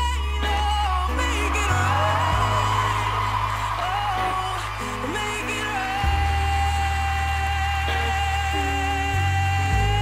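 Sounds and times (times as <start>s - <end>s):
backing track with low bass: 0.0s - 10.0s.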